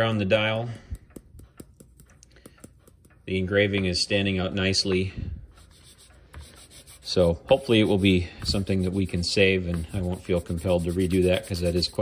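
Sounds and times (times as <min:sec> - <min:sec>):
faint scratchy rubbing: 0:05.6 - 0:12.0.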